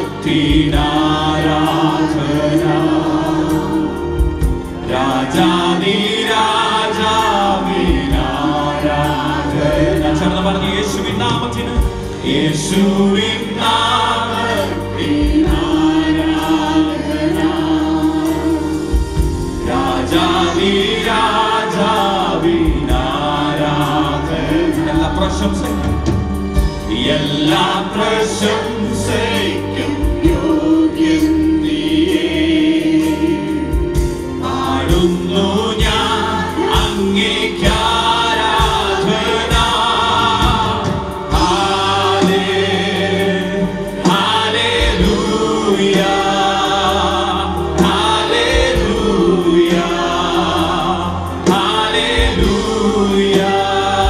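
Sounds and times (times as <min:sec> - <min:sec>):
keyboard: 0:00.0 - 0:54.0
men and women singing together: 0:00.0 - 0:54.0.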